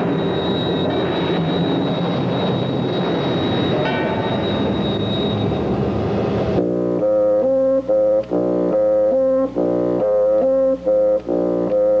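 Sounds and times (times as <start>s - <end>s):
city traffic rumble: 0.0s - 6.6s
brass music: 6.6s - 12.0s.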